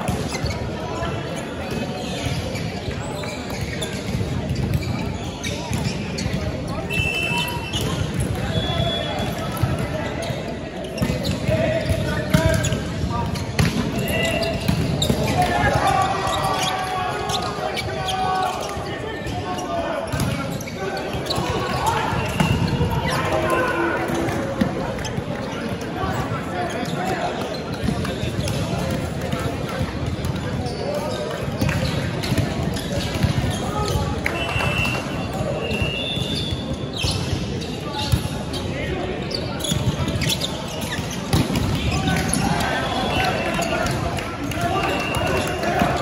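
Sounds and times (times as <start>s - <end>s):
players calling and shouting: 0.0s - 46.0s
players' voices: 0.0s - 46.0s.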